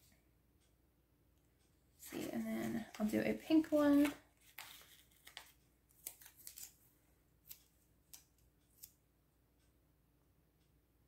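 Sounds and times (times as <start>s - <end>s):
paper sticker rustling: 2.1s - 6.8s.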